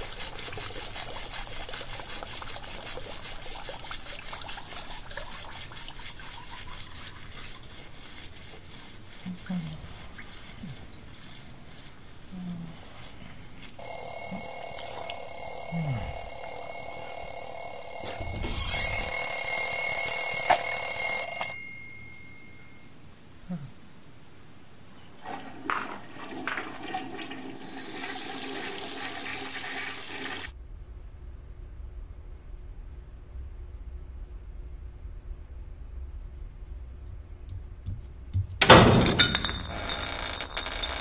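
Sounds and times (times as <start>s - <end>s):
hand hitting alarm clock: 13.8s - 22.3s
twin-bell alarm clock ringing: 13.8s - 22.8s, 39.1s - 41.0s.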